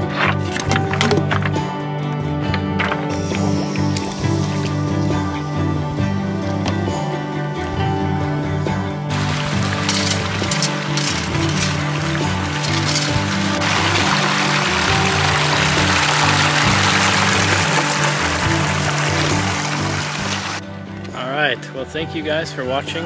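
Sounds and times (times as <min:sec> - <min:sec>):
background music: 0:00.0 - 0:23.0
water gushing from a hose: 0:03.1 - 0:05.4, 0:09.1 - 0:20.6.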